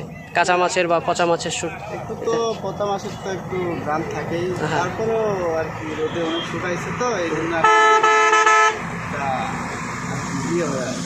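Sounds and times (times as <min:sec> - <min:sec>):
vehicle horn blasts: 0:05.9 - 0:06.6, 0:07.6 - 0:08.8.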